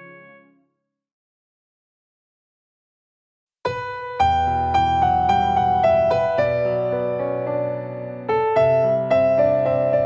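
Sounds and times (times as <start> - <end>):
piano-like keyboard melody: 0.0 - 0.6, 3.7 - 10.0.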